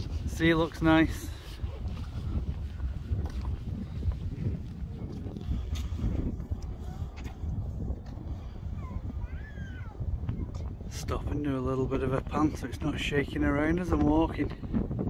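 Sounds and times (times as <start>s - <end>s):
footsteps on timber bridge: 0.0s - 8.4s
wind rumbling on microphone: 0.0s - 15.0s.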